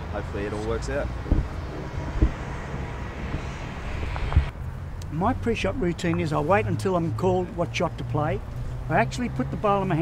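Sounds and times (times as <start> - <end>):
low thuds: 1.2 - 4.6.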